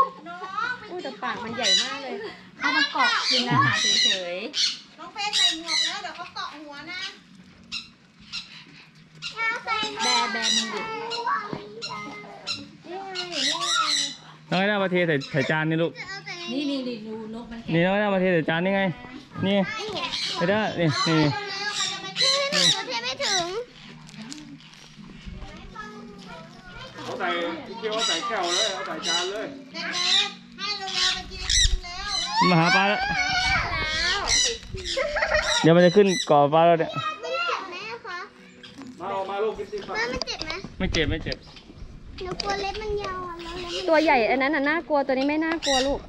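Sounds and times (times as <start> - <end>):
young children talking: 0.0 - 7.3, 9.2 - 14.7, 15.3 - 17.6, 18.8 - 24.6, 25.2 - 40.7, 42.2 - 46.0
parrots squawking: 0.6 - 16.1, 19.3 - 24.8, 27.0 - 37.2, 43.3 - 44.4, 45.1 - 46.0.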